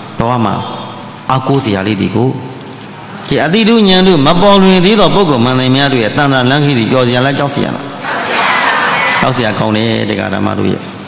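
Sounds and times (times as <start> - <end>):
man speaking in chant-like voice: 9.2 - 10.8.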